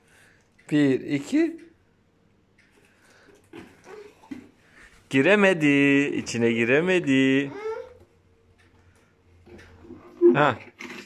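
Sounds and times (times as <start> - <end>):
child whimpering: 3.8 - 4.3, 7.4 - 8.1.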